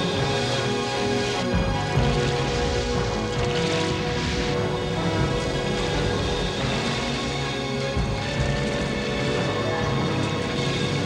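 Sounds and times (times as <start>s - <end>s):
cartoon music sustained chords: 0.0s - 11.0s
noisy high rush: 0.0s - 11.0s.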